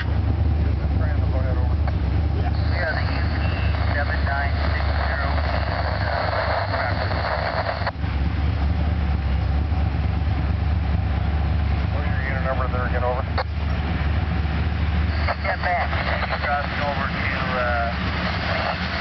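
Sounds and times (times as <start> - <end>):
train cars rumbling on rails: 0.0 - 19.0
voice over radio: 0.8 - 7.9, 11.9 - 13.5, 15.1 - 19.0
radio static: 0.8 - 8.0, 11.9 - 13.6, 15.0 - 19.0.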